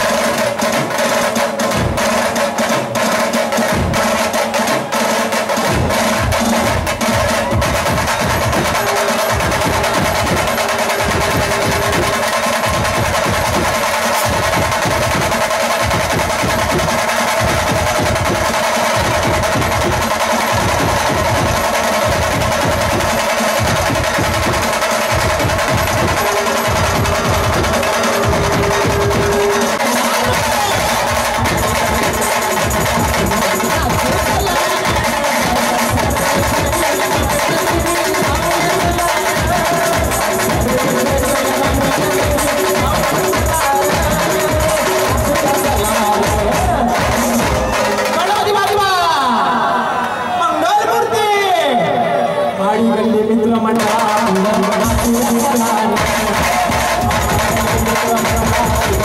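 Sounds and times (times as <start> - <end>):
fast dense drumming: 0.0 - 49.2, 53.7 - 59.0.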